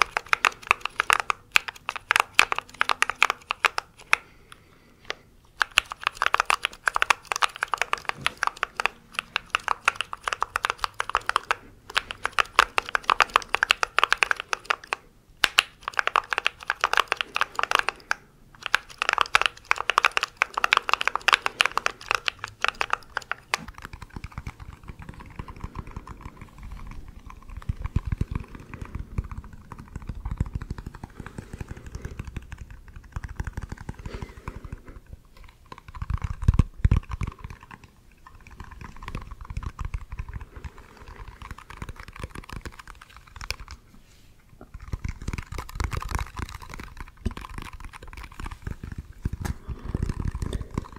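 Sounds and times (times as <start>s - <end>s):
mechanical keyboard typing: 0.0s - 4.2s, 5.6s - 34.8s, 35.6s - 43.8s, 44.8s - 50.9s.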